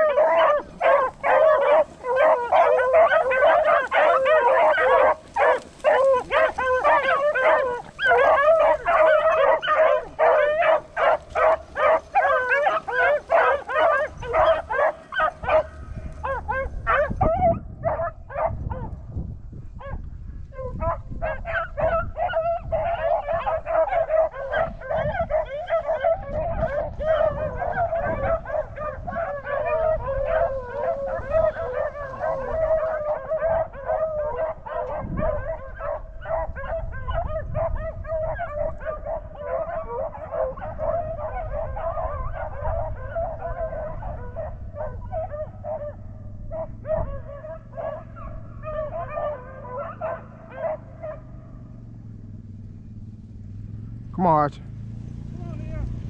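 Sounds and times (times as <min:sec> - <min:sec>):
pack of beagles baying: 0:00.0 - 0:19.0, 0:19.7 - 0:56.0.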